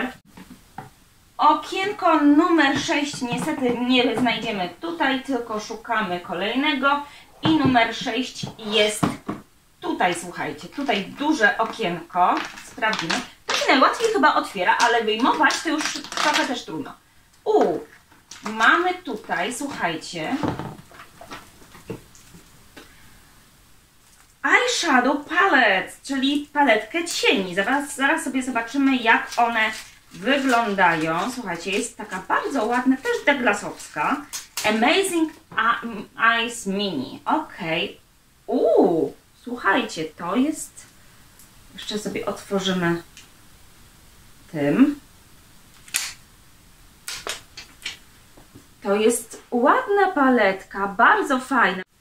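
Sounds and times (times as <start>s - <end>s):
soft handling taps and rustles: 20.4s - 22.9s.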